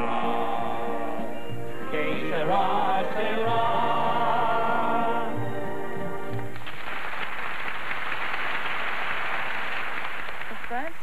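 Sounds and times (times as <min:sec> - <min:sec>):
audience applauding: 0:06.3 - 0:11.0.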